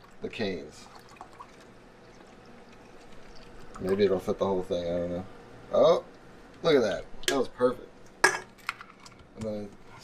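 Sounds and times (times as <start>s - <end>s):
sparkling water pouring: 0.0s - 4.0s.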